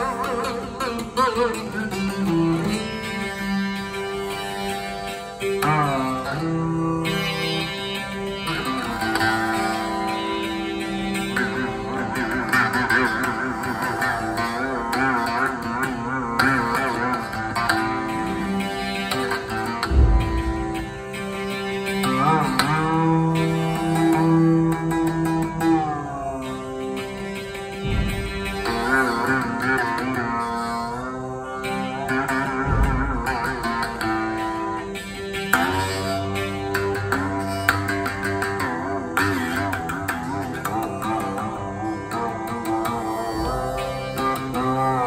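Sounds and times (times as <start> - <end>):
plucked string instrument sliding: 0.0 - 45.0
steady drone: 17.3 - 21.9, 25.2 - 31.0
short low thump: 19.8 - 21.0, 27.8 - 28.8, 32.7 - 33.5.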